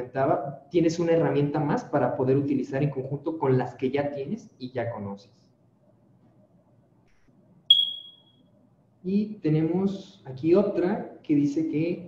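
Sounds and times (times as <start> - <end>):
high-pitched electronic ping: 7.7 - 8.3.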